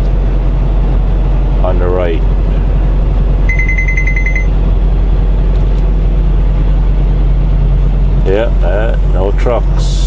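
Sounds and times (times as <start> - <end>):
diesel engine droning: 0.0 - 10.0
road noise: 0.0 - 10.0
rapid high electronic beeps: 3.5 - 4.5.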